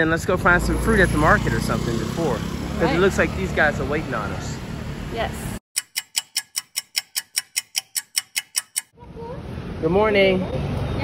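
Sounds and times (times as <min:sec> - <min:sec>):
clock ticking: 0:05.8 - 0:09.0.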